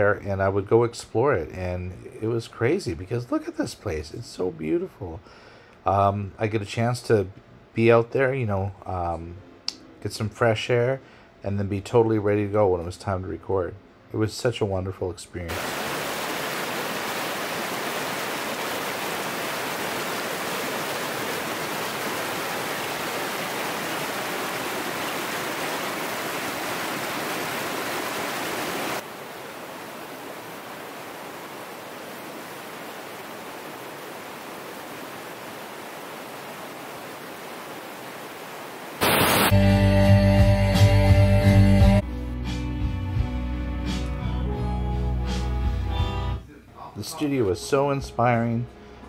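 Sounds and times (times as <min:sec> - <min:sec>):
water rushing over rocks: 0:15.5 - 0:39.6
guitar music: 0:39.5 - 0:46.4.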